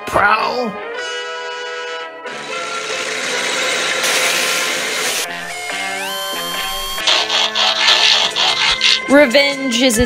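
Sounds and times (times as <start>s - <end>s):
music: 0.0s - 10.0s
whirring mechanical pulses: 5.3s - 9.1s.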